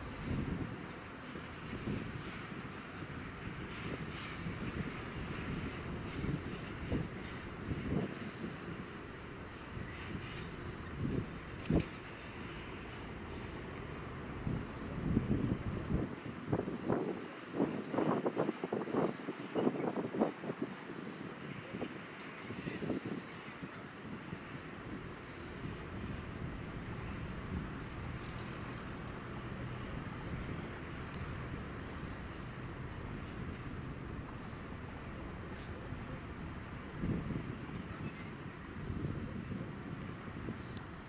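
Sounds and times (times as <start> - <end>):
locomotive engine and wheels rumbling: 0.0 - 41.0.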